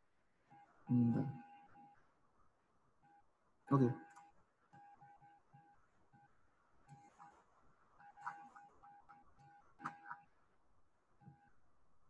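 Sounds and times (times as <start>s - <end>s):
faint electronic beeps: 0.2s - 12.0s.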